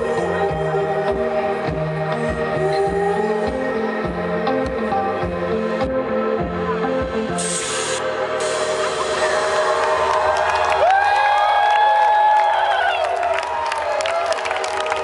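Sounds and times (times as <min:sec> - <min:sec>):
low bass notes: 0:00.0 - 0:11.6
crowd cheering and clapping: 0:08.7 - 0:15.0.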